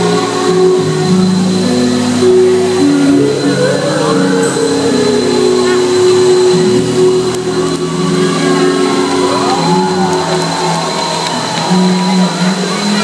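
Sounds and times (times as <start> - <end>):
pop ballad backing music: 0.0 - 13.0
woman singing amplified: 0.0 - 13.0.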